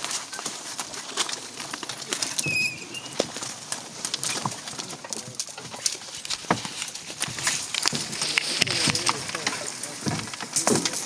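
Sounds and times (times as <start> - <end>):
twigs snapping against canoe: 0.0 - 11.0.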